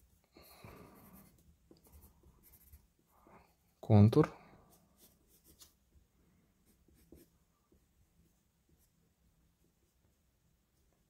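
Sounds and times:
pencil scratching on paper: 0.7s - 3.1s, 4.7s - 5.8s, 6.6s - 7.4s.

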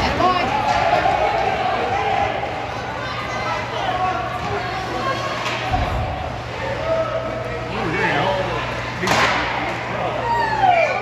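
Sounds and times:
spectators shouting: 0.0s - 8.5s
hockey puck crack: 9.0s - 9.8s.

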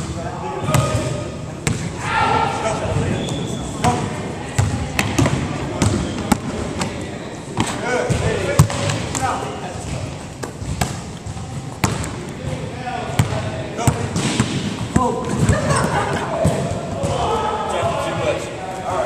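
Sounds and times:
basketball bouncing on wooden floor: 9.8s - 12.6s.

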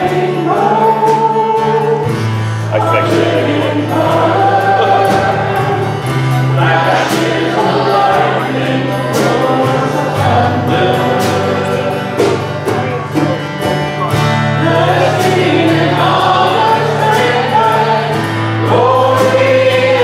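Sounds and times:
congregation singing: 0.0s - 20.0s
instrumental accompaniment: 0.0s - 20.0s.

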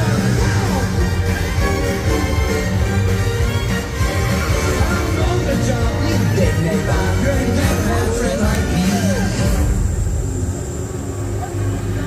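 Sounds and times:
low steady rumble: 4.0s - 12.0s.

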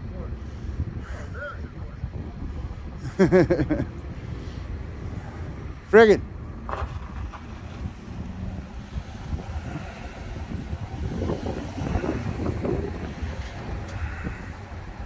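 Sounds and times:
vehicle engine and tyres: 0.0s - 15.0s
wind buffeting microphone: 0.0s - 15.0s.

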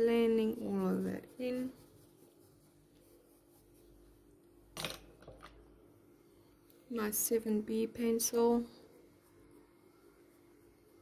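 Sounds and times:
brush brushing over paper: 0.0s - 4.5s, 8.0s - 11.0s
low steady hum: 0.0s - 11.0s.

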